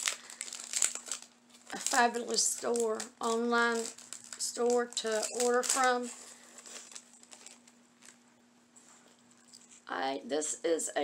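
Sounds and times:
woman speaking: 1.7s - 6.2s, 9.9s - 11.0s.

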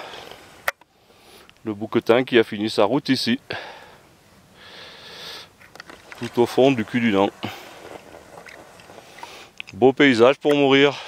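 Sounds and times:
person breathing in: 4.6s - 5.6s
person speaking: 6.2s - 7.8s.

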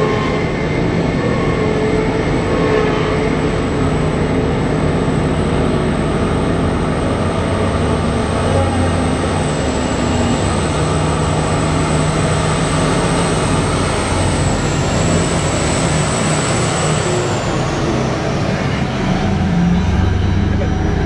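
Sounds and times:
heavy truck engine: 0.0s - 21.0s.

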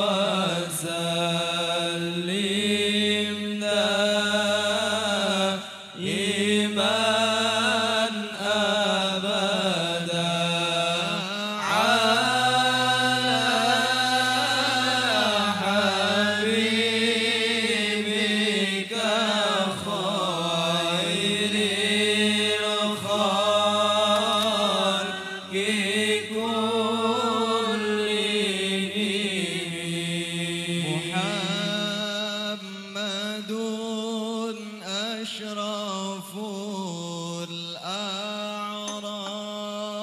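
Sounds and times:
low held vocal drone: 0.0s - 38.2s
men chanting through microphones: 0.0s - 40.0s.

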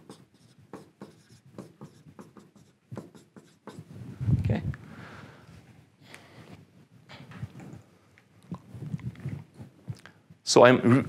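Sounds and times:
marker writing on whiteboard: 0.0s - 3.9s.

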